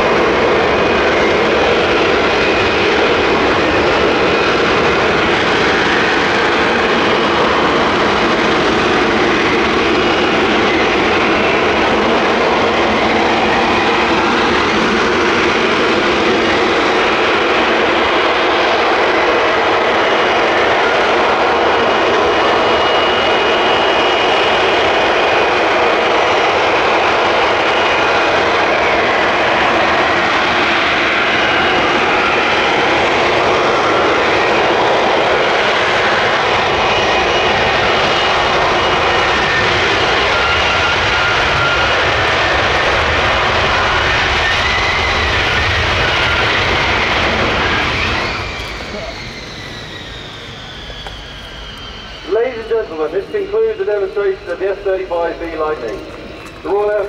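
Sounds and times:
deep jet rumble: 0.0s - 57.0s
jet engine hovering with whine: 0.0s - 57.0s.

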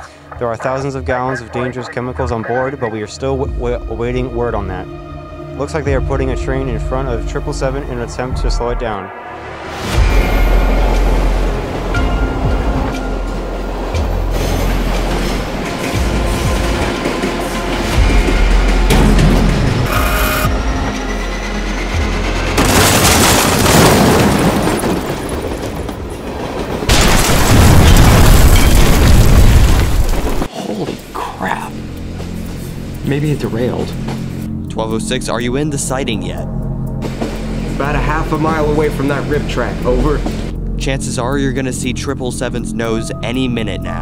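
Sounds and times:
dramatic score music: 0.0s - 24.1s, 30.2s - 44.0s
explosion booms: 26.9s - 30.5s.

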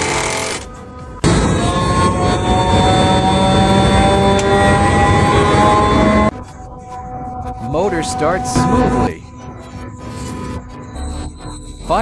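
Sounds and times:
rushing machine noise: 1.2s - 11.3s
electric motor whine rising: 1.2s - 11.8s.

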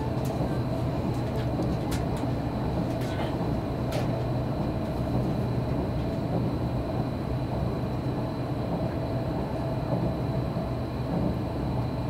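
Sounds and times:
train wheels rumbling: 0.0s - 6.8s.

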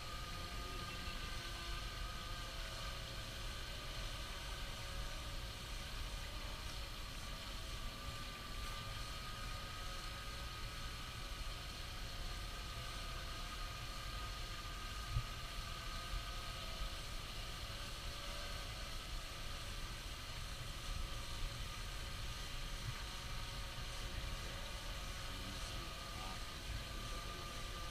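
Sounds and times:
faint motor hum: 0.0s - 27.9s.

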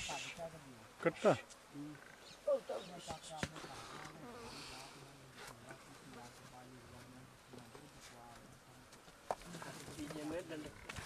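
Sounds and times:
flies buzzing: 0.0s - 11.0s.

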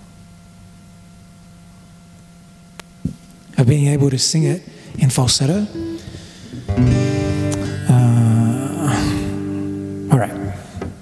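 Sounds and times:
acoustic guitar chords strummed: 3.7s - 11.0s.

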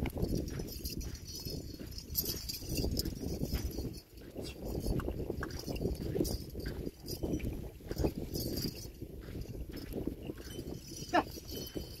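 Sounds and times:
plodding hooves: 0.0s - 12.0s.

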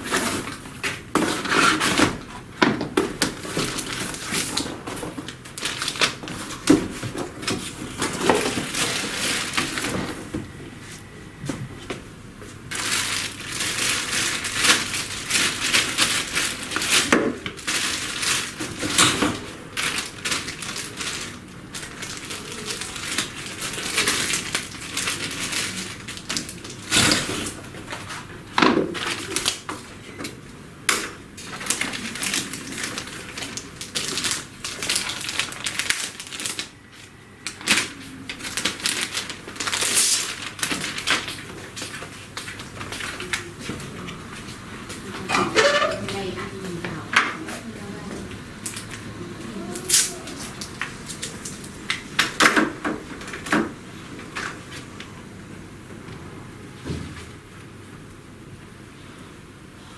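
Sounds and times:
plastic bag crinkling: 3.1s - 10.3s, 12.7s - 28.2s, 28.9s - 29.8s, 31.4s - 44.4s.

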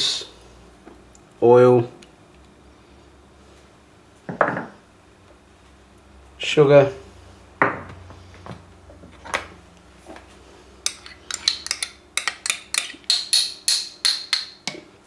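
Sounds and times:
spoon knocking ceramic bowl: 10.9s - 14.8s.

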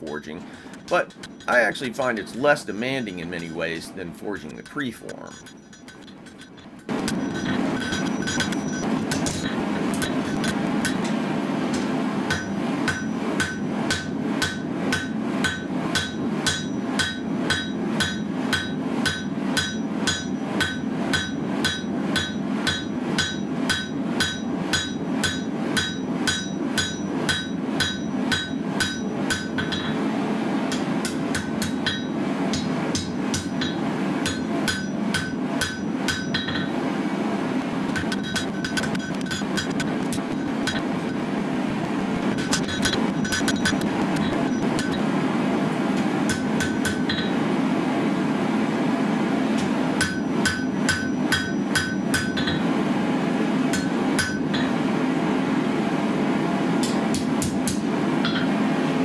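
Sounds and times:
hammer striking steel on anvil: 4.5s - 30.1s, 30.7s - 36.8s, 37.9s - 41.2s, 42.3s - 45.1s, 46.0s - 47.4s, 49.6s - 52.7s, 53.7s - 54.8s, 56.8s - 58.6s.

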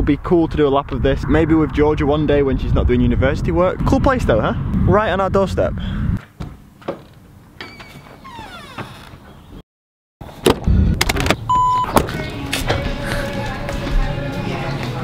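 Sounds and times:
door opening and creaking: 6.4s - 9.6s, 10.4s - 12.9s
short electronic beep: 11.5s - 12.0s
music: 11.8s - 15.0s.

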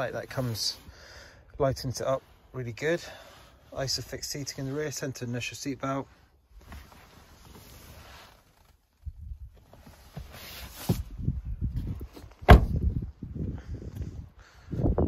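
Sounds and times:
low rumbling microphone noise: 8.9s - 15.0s
car door slamming: 12.4s - 12.9s.

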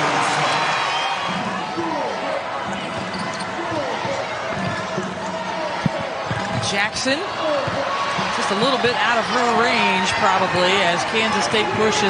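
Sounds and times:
arena crowd noise: 0.0s - 12.0s
shoe squeaks: 3.0s - 3.6s.

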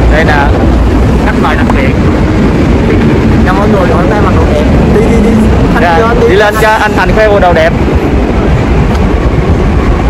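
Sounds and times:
city street traffic rumble: 0.0s - 10.0s
man speaking: 3.4s - 7.7s.

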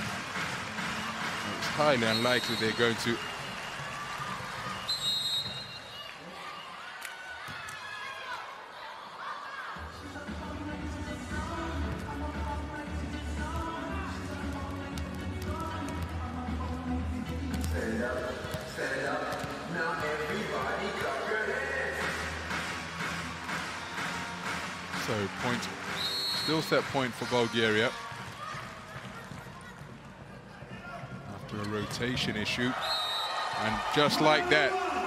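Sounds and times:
arena music over loudspeakers: 0.0s - 5.5s, 9.8s - 29.1s, 30.1s - 35.0s
high whistle blast: 26.0s - 26.6s.

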